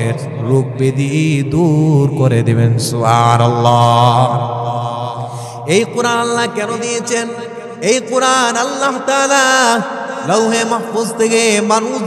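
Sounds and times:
man chanting a sermon: 0.0s - 12.0s.

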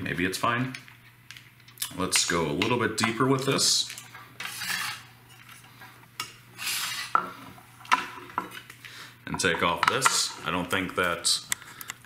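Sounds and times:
short metal scrape: 4.4s - 5.1s, 6.6s - 7.2s.

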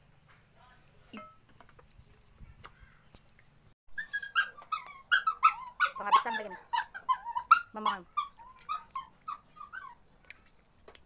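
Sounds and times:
dog whimpering: 4.0s - 10.0s.

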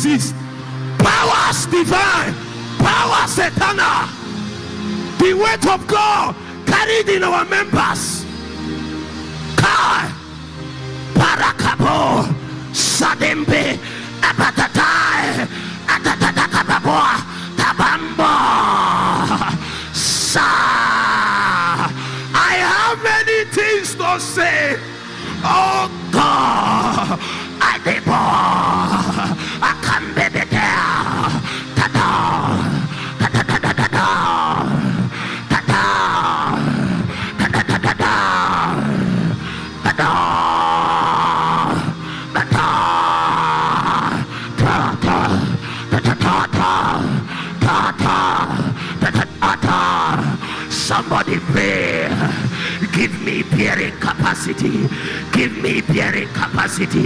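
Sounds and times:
soft background music: 0.0s - 57.0s
man crying out into microphone: 11.1s - 57.0s.

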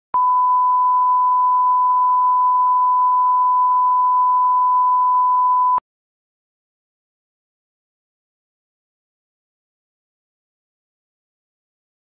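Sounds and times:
steady test tone beep: 0.2s - 5.8s.

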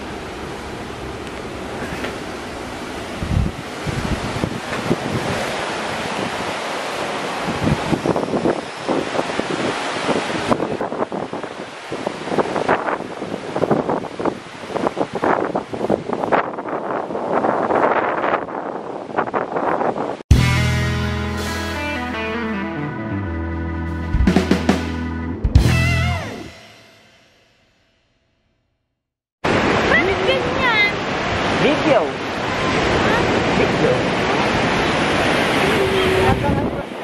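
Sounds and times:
gusty wind buffeting microphone: 0.0s - 20.2s, 32.2s - 37.0s
surf breaking on beach: 0.0s - 20.2s, 29.4s - 37.0s.

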